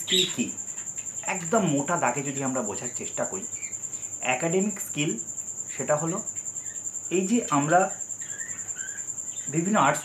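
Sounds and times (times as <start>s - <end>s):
man speaking: 0.0s - 0.6s, 1.2s - 3.5s, 4.2s - 6.3s, 7.1s - 8.0s, 9.5s - 10.0s
cricket trill: 0.0s - 10.0s.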